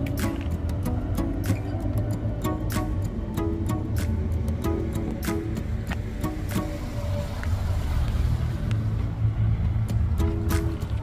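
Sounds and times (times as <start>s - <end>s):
music playing: 0.0s - 11.0s.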